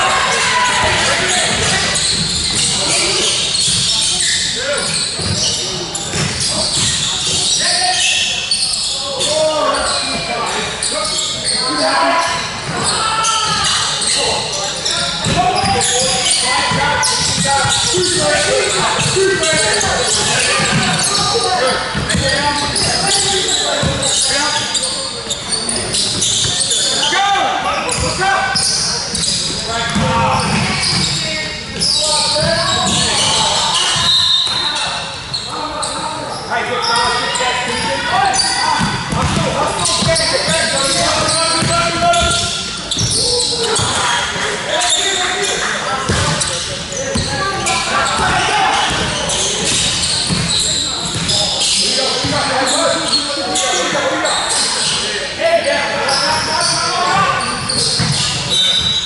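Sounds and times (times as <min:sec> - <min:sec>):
ball bouncing on wooden court: 0:06.1 - 0:07.4, 0:38.8 - 0:43.2, 0:46.1 - 0:46.5, 0:48.2 - 0:51.4, 0:58.0 - 0:58.9.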